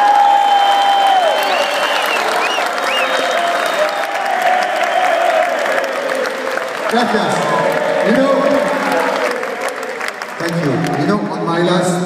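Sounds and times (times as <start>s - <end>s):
crowd clapping: 0.0s - 11.4s
crowd cheering: 0.0s - 11.5s
whistles: 0.3s - 5.4s.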